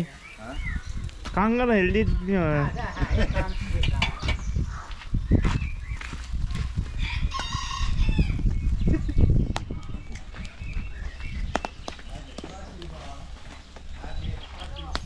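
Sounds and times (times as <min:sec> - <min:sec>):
rooster crowing: 0:07.0 - 0:08.4.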